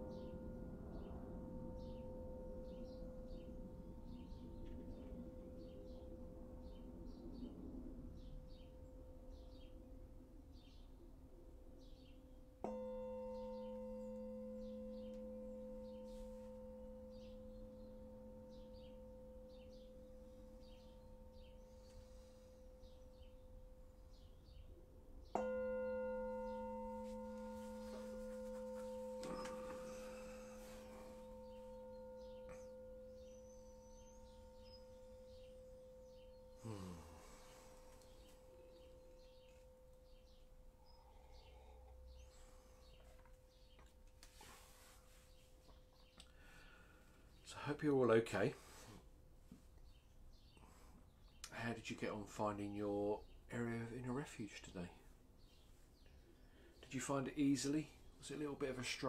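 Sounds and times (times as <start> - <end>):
meditation bell ringing: 0.0 - 7.0, 12.6 - 24.6, 25.2 - 43.0
birds chirping: 11.8 - 48.6.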